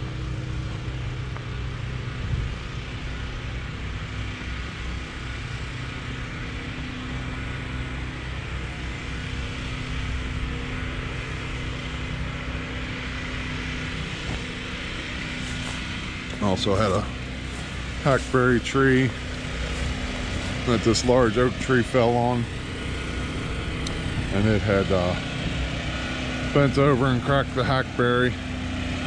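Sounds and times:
engine humming steadily: 0:00.0 - 0:29.0.

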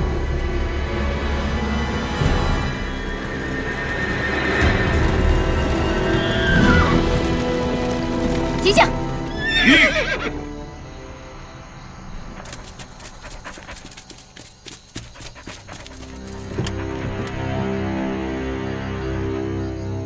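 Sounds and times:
film background music: 0:00.0 - 0:20.0
hooves clopping on ground: 0:02.8 - 0:10.3, 0:12.1 - 0:17.5
horse whinnying: 0:06.2 - 0:07.2, 0:09.3 - 0:10.4.

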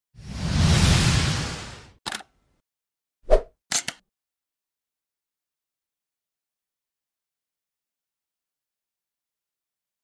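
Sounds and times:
quick clicks: 0:02.1 - 0:02.3, 0:03.7 - 0:04.0.

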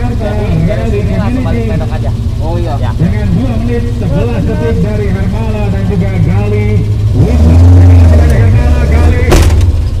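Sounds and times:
car engine running at low revs: 0:00.0 - 0:10.0
sharp bang: 0:09.2 - 0:09.9.

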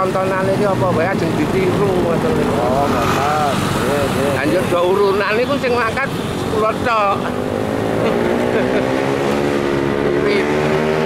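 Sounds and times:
wind and road noise: 0:00.0 - 0:11.0.

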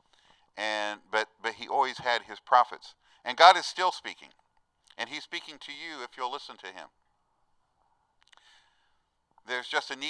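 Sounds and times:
faint breath: 0:00.0 - 0:00.6, 0:03.0 - 0:03.3, 0:08.3 - 0:09.2.

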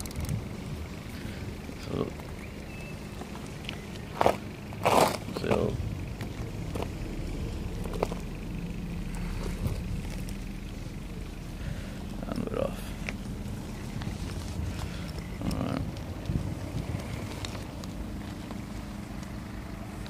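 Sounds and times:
wheels rumbling on concrete: 0:00.0 - 0:20.0.

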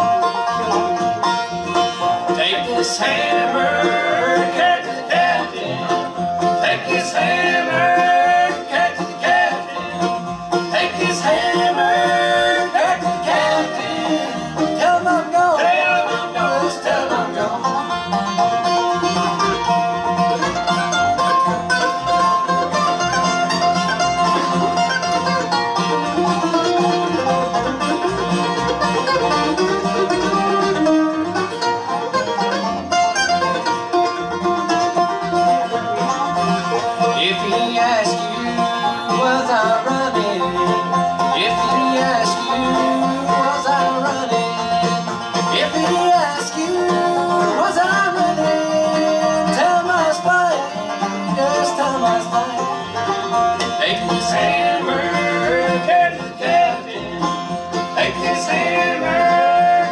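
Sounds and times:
bluegrass band playing: 0:00.0 - 0:59.9.

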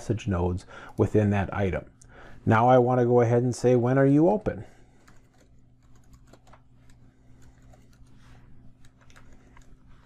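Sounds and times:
faint keyboard typing: 0:04.6 - 0:10.0.

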